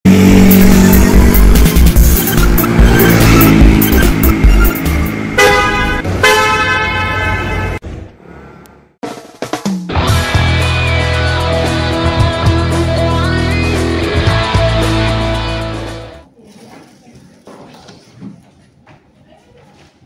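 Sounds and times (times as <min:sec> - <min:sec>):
short rising tone: 0:00.1 - 0:06.1
cartoon car sound effects: 0:00.1 - 0:07.6
car horn honking: 0:00.2 - 0:07.8
music with heavy beat: 0:00.3 - 0:05.3, 0:09.0 - 0:16.2.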